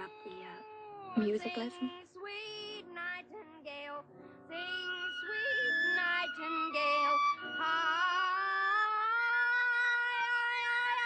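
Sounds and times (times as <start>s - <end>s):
flute long shrill note: 4.8s - 11.0s.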